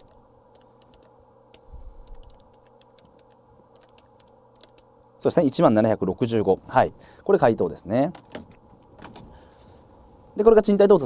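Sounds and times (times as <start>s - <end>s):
calculator keys clicking: 0.0s - 4.9s, 8.0s - 9.3s.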